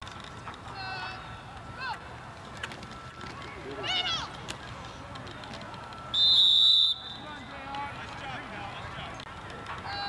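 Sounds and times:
referee whistle blast: 6.1 - 7.4.

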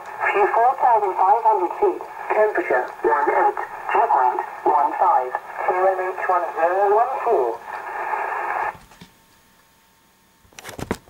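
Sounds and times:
radio static hissing: 0.0 - 8.8.

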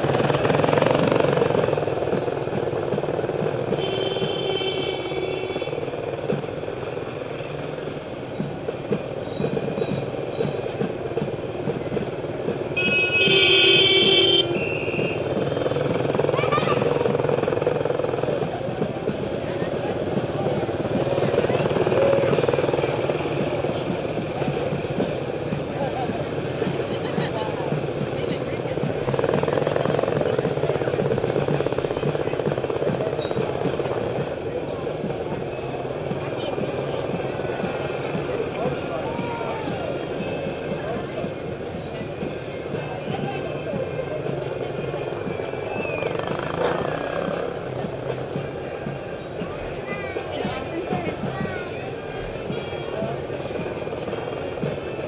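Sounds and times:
motorcycle engine running: 0.0 - 55.0
other motorcycles: 0.0 - 55.0.

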